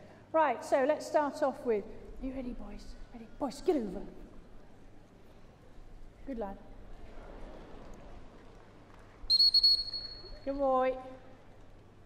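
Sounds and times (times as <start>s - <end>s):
dog training whistle blast: 9.3s - 10.4s.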